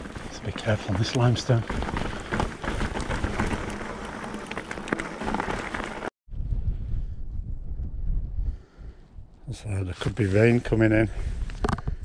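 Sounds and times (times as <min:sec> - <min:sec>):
bike tyres on rocky track: 0:00.0 - 0:06.1
clatter of bike and stones: 0:00.0 - 0:06.1, 0:11.6 - 0:12.0
wind on microphone: 0:06.3 - 0:12.0.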